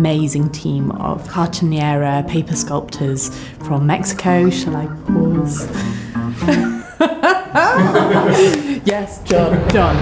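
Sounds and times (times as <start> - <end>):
woman speaking: 0.0 - 5.8
woman laughing: 5.6 - 8.8.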